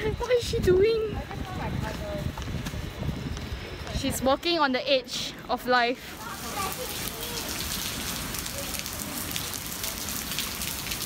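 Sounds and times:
faint voices: 5.1 - 10.4
steady rain falling: 6.1 - 11.0.

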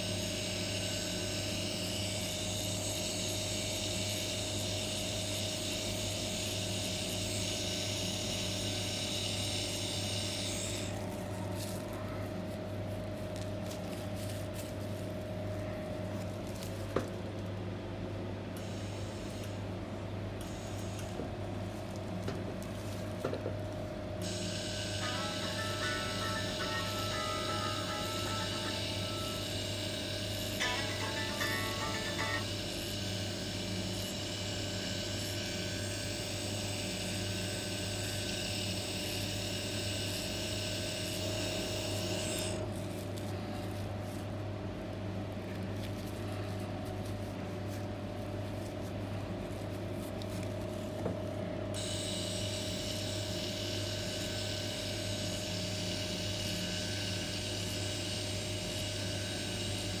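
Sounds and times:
electric hum: 9.5 - 32.8
high whine: 24.2 - 32.6.

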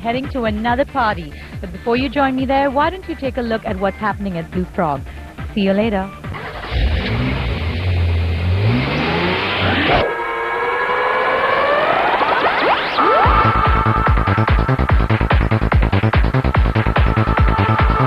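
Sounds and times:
electronic dance beat: 0.0 - 6.4, 11.4 - 18.0
swooping synth tones: 6.3 - 18.0
low synth drone with rising sweep: 6.4 - 18.0.

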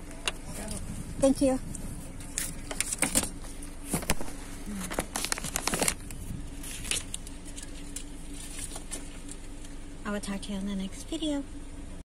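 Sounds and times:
steady low hum: 0.0 - 12.0
phone rustling against clothing: 2.1 - 9.7.

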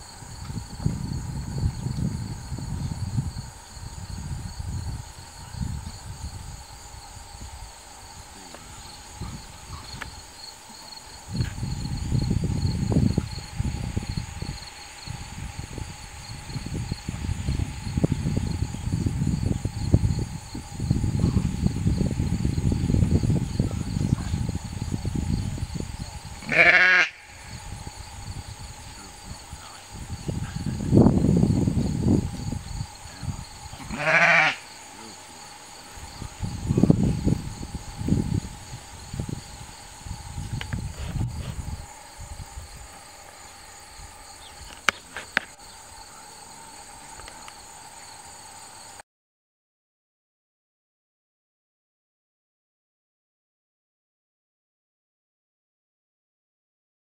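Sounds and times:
high insect drone: 0.0 - 49.0
sheep bleating loudly: 26.4 - 27.2, 33.8 - 34.7.

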